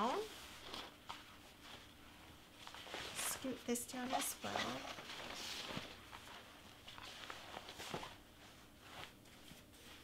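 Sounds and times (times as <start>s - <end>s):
fabric rustling and sliding: 0.0s - 10.0s.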